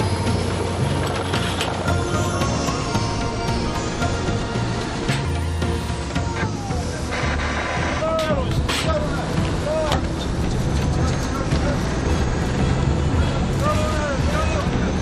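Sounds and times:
boat engine humming: 0:00.0 - 0:15.0.

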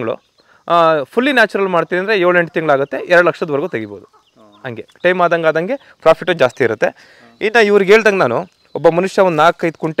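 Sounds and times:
man talking: 0:00.0 - 0:10.0
hen clucking faintly: 0:02.3 - 0:05.1.

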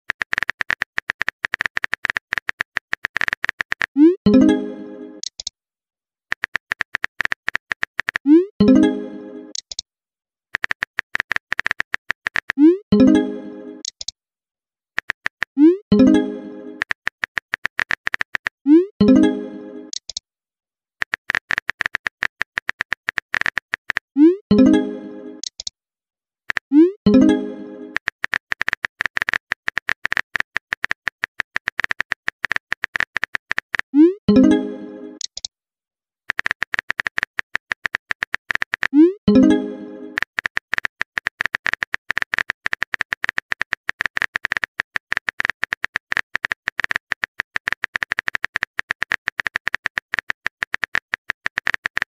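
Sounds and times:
phone keyboard typing clicks: 0:00.1 - 0:04.6, 0:05.2 - 0:05.5, 0:06.3 - 0:08.3, 0:09.5 - 0:09.8, 0:10.6 - 0:13.1, 0:13.8 - 0:14.1, 0:15.0 - 0:18.6, 0:19.9 - 0:20.2, 0:21.0 - 0:24.1, 0:25.4 - 0:25.7, 0:26.5 - 0:33.9, 0:35.2 - 0:35.5, 0:36.3 - 0:52.0.

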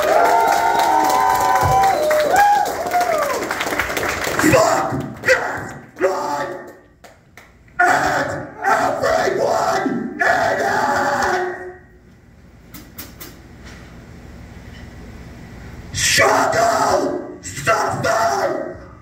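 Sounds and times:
man shouting through pa: 0:16.0 - 0:18.8.

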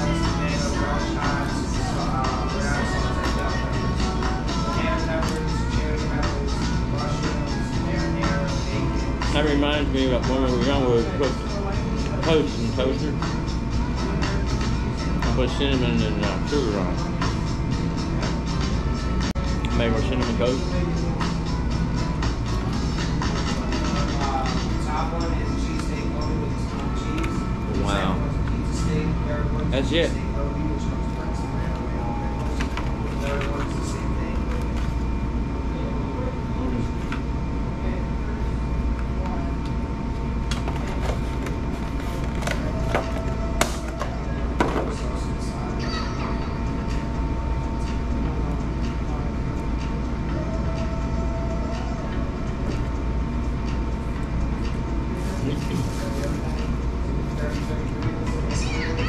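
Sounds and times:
steady low hum: 0:00.0 - 0:59.0
faint voices: 0:54.8 - 0:59.0.

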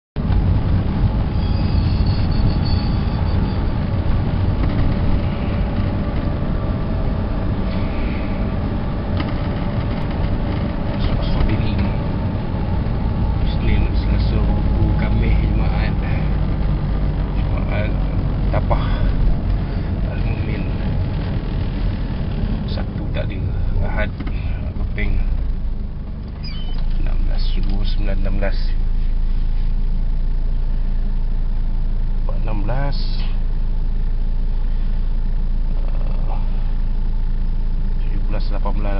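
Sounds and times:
engine and road rumble: 0:00.2 - 0:38.9.

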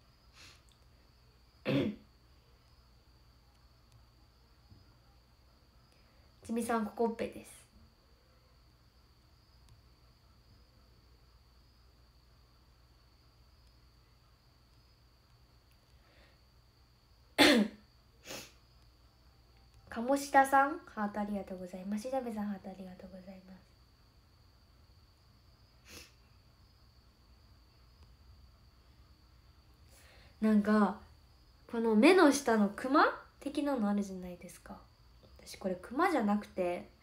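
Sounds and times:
girl coughing: 0:01.7 - 0:02.0, 0:17.4 - 0:17.8.

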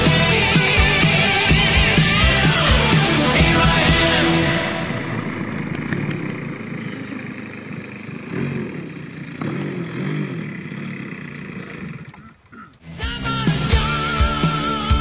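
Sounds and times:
music: 0:00.0 - 0:05.4, 0:12.8 - 0:15.0
model plane gasoline engine: 0:03.7 - 0:12.8.

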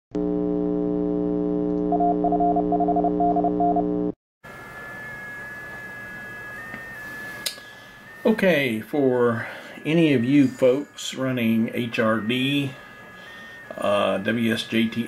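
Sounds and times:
buzzing drone: 0:00.2 - 0:08.1
faint pitch-shifting tone: 0:04.5 - 0:15.0
shortwave radio hiss: 0:04.5 - 0:15.0.

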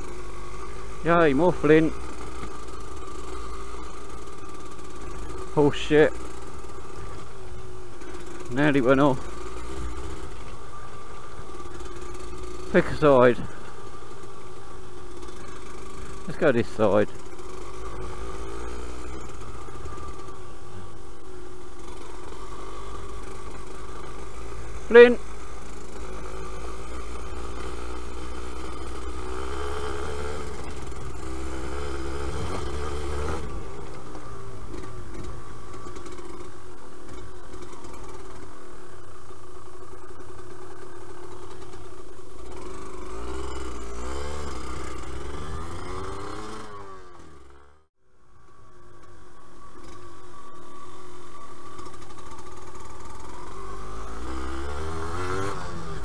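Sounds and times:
two-stroke motorcycle engine running: 0:00.0 - 0:56.0.

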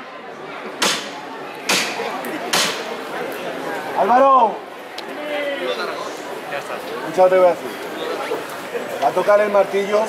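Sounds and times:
crowd chatter: 0:00.0 - 0:10.0
sharp hammer knocks on wood: 0:00.8 - 0:01.1, 0:01.7 - 0:02.8.

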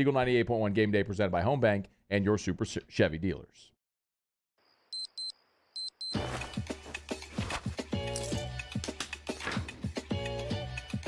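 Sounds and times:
digital alarm clock beeping: 0:04.9 - 0:06.3.

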